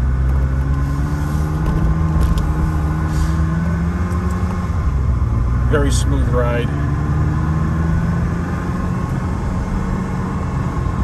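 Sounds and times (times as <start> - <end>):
sports car engine and exhaust: 0.0 - 11.0.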